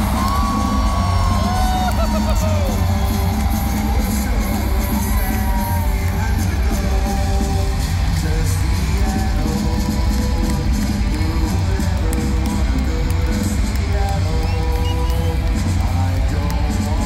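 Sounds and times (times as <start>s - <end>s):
crowd yelling and whooping: 0.0s - 17.0s
loud rock music: 0.0s - 17.0s
singing: 0.0s - 17.0s.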